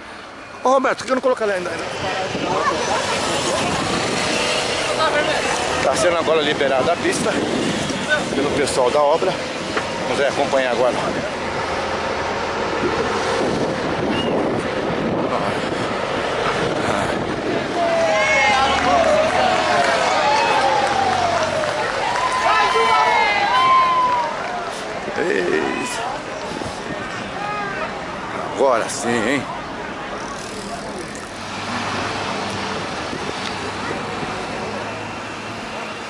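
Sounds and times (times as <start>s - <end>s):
cars driving by: 0.0s - 36.0s
street traffic: 0.0s - 36.0s
truck passing: 0.0s - 36.0s
wind buffeting microphone: 1.8s - 5.1s, 5.7s - 10.0s, 12.6s - 22.4s
voices calling out loudly: 15.3s - 36.0s.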